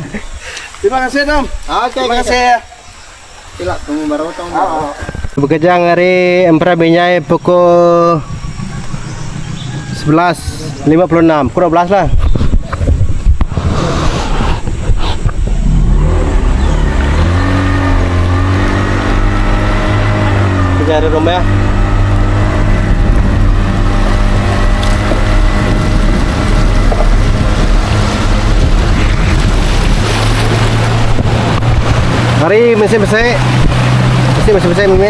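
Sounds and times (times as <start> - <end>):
boat motor running: 7.4 - 11.3, 14.6 - 35.0.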